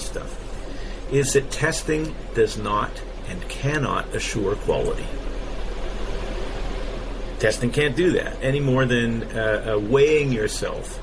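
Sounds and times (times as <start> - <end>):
even hiss: 0.0 - 11.0
low hum: 0.0 - 11.0.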